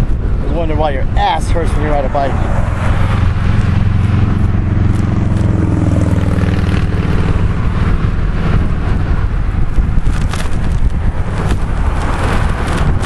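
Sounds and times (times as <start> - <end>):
vehicle engine passing by: 1.5 - 13.0.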